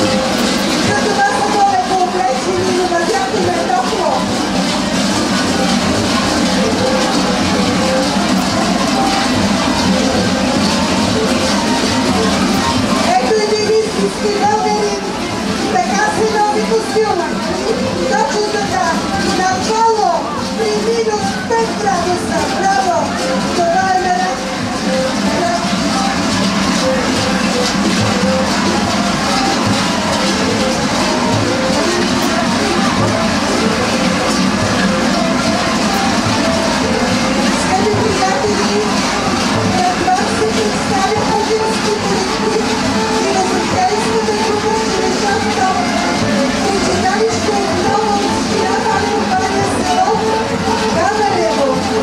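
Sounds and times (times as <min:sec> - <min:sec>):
large bells clanging: 0:00.0 - 0:52.0.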